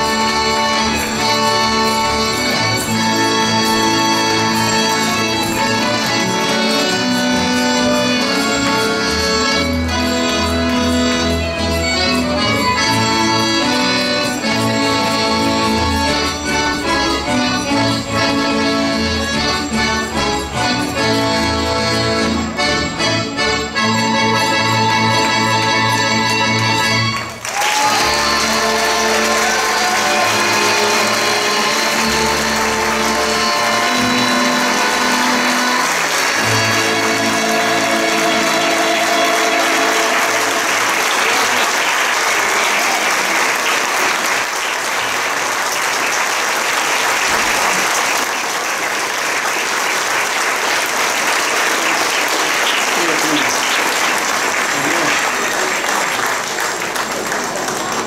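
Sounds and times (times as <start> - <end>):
audience applauding: 0.0 - 20.1, 24.4 - 58.0
folk band playing: 0.0 - 58.0.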